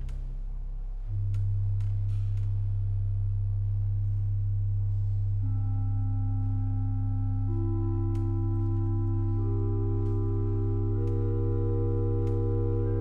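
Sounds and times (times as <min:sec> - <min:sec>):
pipe organ chord: 0:05.0 - 0:13.0.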